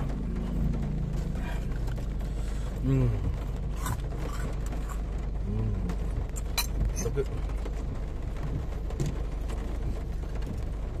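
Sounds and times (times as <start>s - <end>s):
car cabin rumble: 0.0s - 11.0s
rain hissing: 0.0s - 11.0s.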